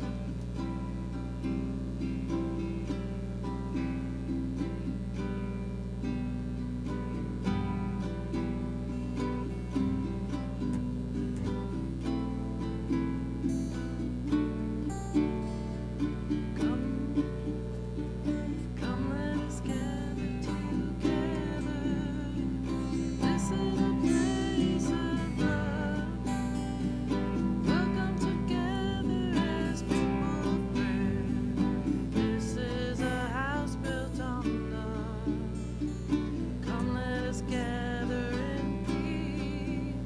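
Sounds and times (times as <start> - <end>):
acoustic guitars playing: 0.0 - 40.0
person singing: 0.0 - 40.0.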